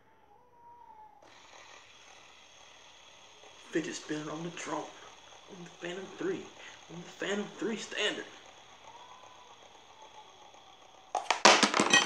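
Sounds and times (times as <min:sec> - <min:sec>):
fidget spinner bearing whir: 0:00.3 - 0:12.0.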